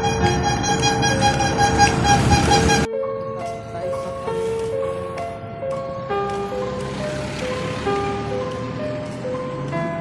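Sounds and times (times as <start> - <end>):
vendor's horn tooting: 0.0 - 2.9.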